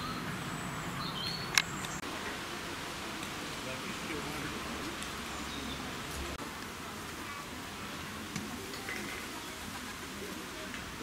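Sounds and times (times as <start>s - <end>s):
faint distant voices: 0.0s - 11.0s
steady hiss: 0.0s - 11.0s.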